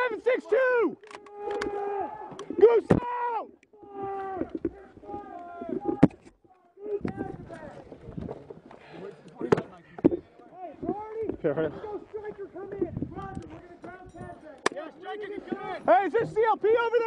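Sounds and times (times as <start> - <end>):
soldiers shouting: 0.0 - 6.0.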